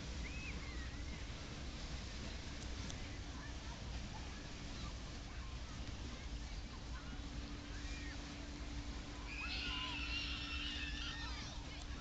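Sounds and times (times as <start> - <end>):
distant voices: 0.0 - 12.0
high wavering shout: 9.2 - 11.5.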